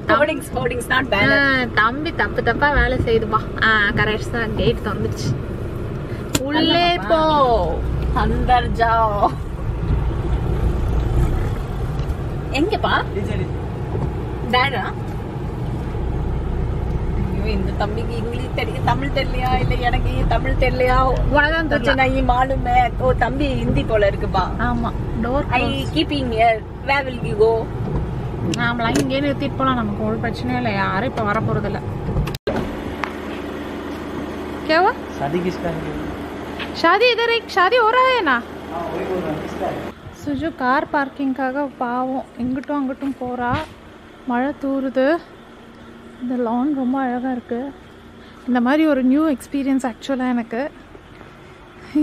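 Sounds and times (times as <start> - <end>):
car engine and road rumble: 0.0 - 52.0.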